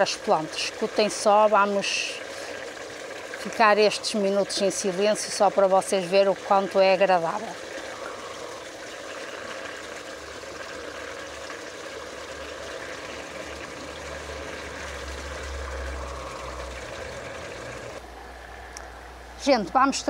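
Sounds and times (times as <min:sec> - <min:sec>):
stream trickling over stones: 0:00.0 - 0:19.0.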